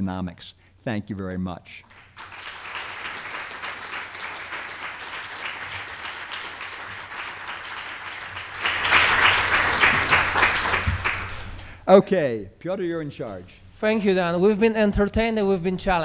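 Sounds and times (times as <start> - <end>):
audience applauding: 1.9 - 11.6.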